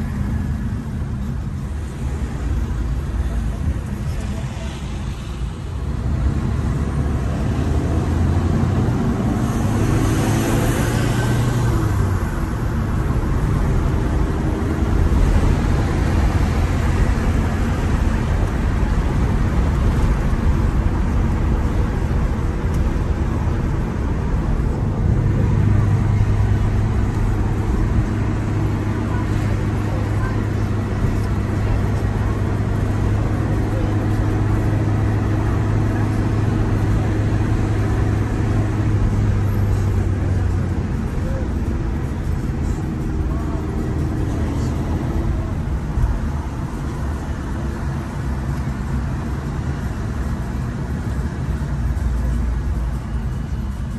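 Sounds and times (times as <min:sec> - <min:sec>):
car engine and tyre noise: 0:00.0 - 0:53.9.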